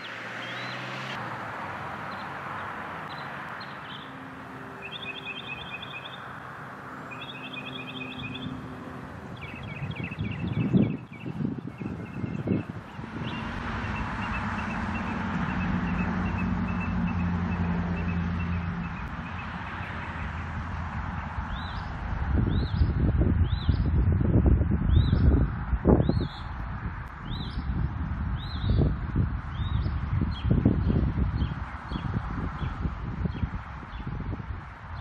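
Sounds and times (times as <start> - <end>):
birds singing: 0.0 - 1.0, 2.1 - 6.4, 7.0 - 20.4, 21.2 - 26.6, 27.2 - 28.9, 29.5 - 35.0
bird chirping: 2.1 - 6.4, 7.0 - 8.7, 9.3 - 20.4
wind on microphone: 7.2 - 35.0.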